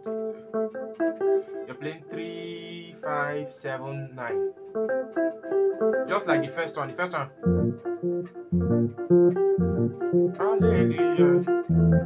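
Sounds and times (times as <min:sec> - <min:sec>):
electronic keyboard bass notes: 0:00.0 - 0:01.4, 0:04.3 - 0:12.0
electronic keyboard chords: 0:00.0 - 0:12.0.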